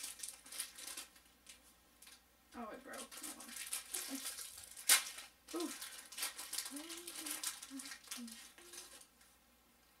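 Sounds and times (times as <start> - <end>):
loud wrapper crackle: 0.0 - 2.2, 2.9 - 9.2
plastic wrapper crinkling: 0.0 - 2.2, 2.8 - 9.3.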